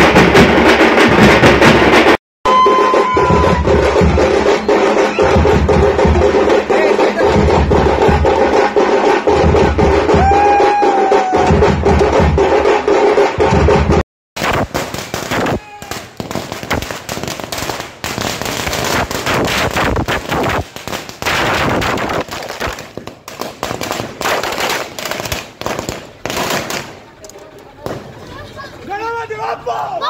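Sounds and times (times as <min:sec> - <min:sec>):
firecrackers crackling: 0:14.4 - 0:28.8.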